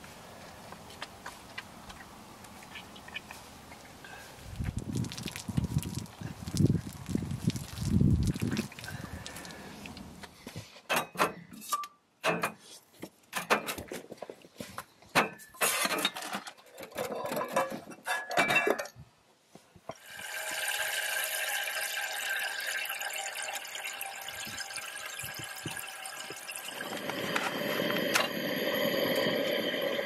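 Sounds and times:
wind buffeting microphone: 4.4 - 9.3, 24.3 - 25.8
cups clinking on metal table: 17.2 - 18.9.

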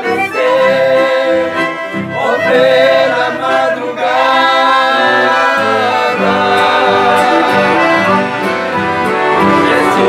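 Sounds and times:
accordions playing: 0.0 - 10.0
acoustic guitar playing: 0.0 - 10.0
voices singing long notes: 0.0 - 10.0.

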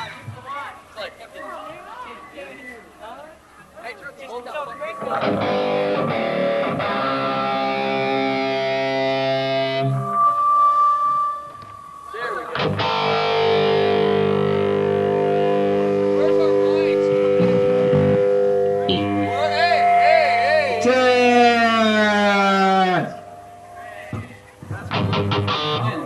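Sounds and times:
distorted electric guitar: 5.0 - 26.0.

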